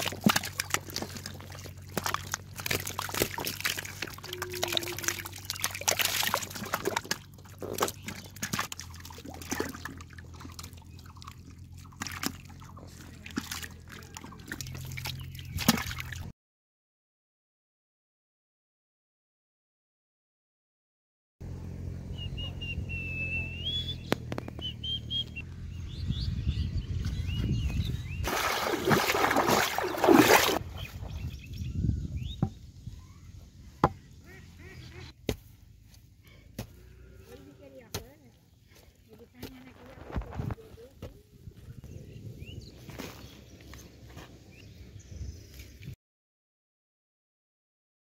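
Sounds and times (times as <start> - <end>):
soil clods dropping: 0.0 - 9.9
metal blade digging wet clay: 0.0 - 10.0, 28.3 - 30.6
bird whistling: 22.1 - 25.4.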